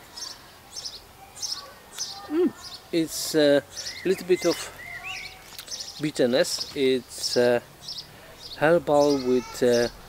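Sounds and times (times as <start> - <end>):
bird chirping: 0.1 - 10.0.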